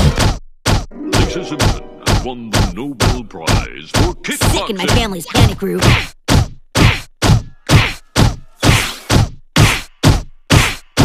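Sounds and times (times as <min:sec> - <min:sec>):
cartoon punch whacks: 0:00.0 - 0:00.9, 0:01.6 - 0:11.0.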